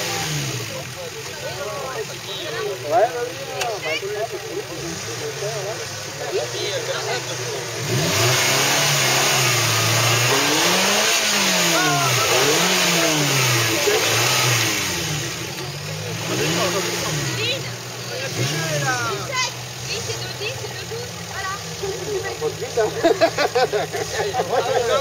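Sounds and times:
off-road vehicle engine revving: 0:00.0 - 0:25.0
people shouting: 0:10.3 - 0:14.5.

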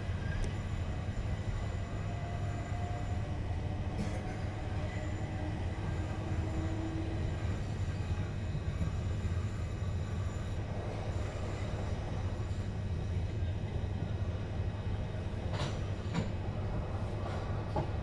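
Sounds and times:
train wheels rumbling on track: 0:00.0 - 0:18.0.

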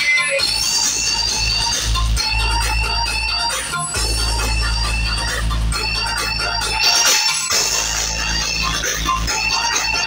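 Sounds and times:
loud electronic music: 0:00.0 - 0:10.0.

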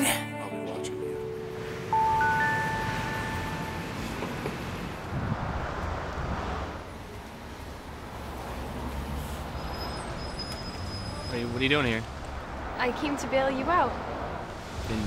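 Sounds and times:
city street traffic: 0:00.0 - 0:15.0.

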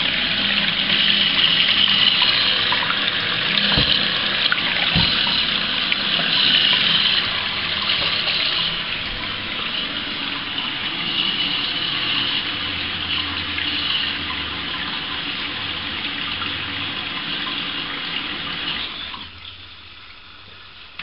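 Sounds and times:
water running through pipe: 0:00.0 - 0:21.0.

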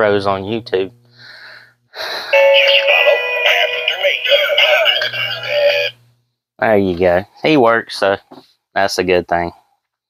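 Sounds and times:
toy playing recorded song: 0:02.4 - 0:05.9.

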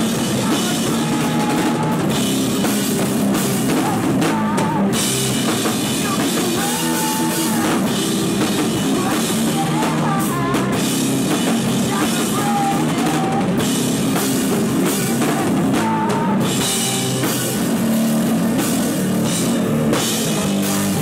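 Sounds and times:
drum kit with cymbals: 0:00.0 - 0:21.0
electric guitar: 0:00.0 - 0:21.0.

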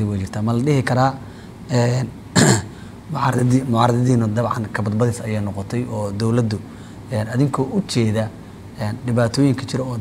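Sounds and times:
man talking: 0:00.0 - 0:10.0
man clearing his throat: 0:02.4 - 0:02.8.

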